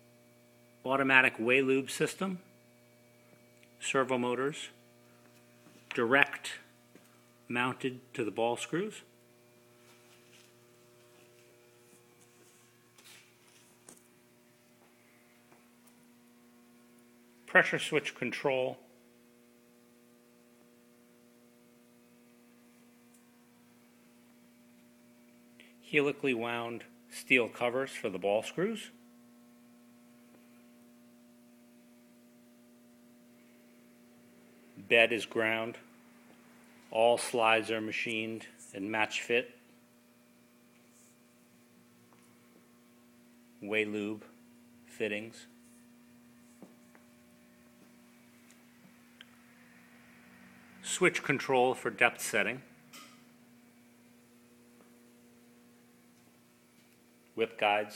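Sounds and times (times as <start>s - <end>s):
faint electrical hum: 0.0s - 57.9s.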